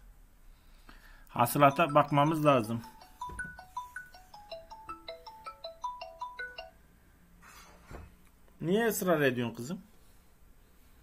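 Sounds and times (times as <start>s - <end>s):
phone melodic ringtone: 1.4s - 6.9s.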